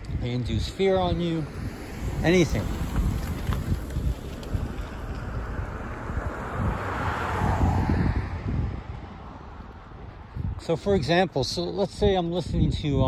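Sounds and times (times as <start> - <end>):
wind rumbling on microphone: 0.0 - 13.0
car driving past: 1.4 - 10.0.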